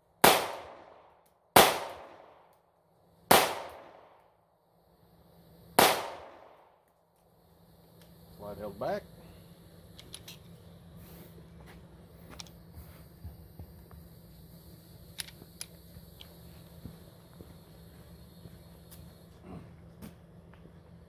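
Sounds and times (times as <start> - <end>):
low hum: 0.0 - 21.0
footsteps on leafy dirt path: 15.8 - 20.8.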